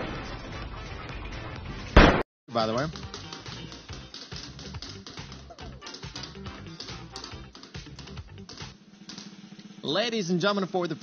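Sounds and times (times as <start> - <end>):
upbeat game-show music: 2.5 - 8.8.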